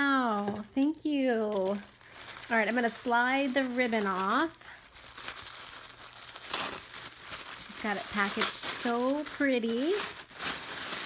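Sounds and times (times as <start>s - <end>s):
tissue paper rustling and crinkling: 0.0s - 11.0s.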